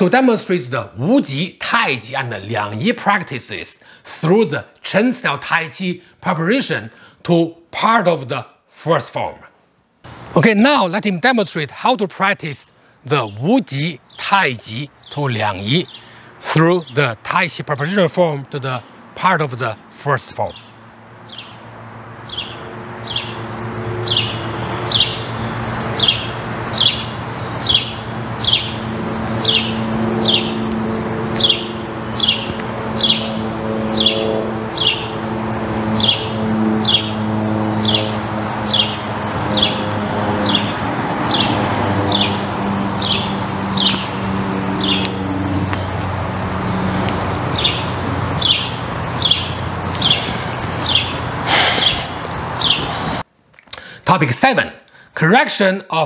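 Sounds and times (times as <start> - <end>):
songbird chirping: 13.1 - 18.9, 19.6 - 53.8.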